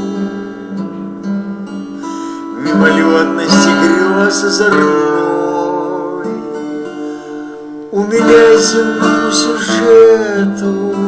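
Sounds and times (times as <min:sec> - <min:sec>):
acoustic guitar accompaniment: 0:00.0 - 0:11.0.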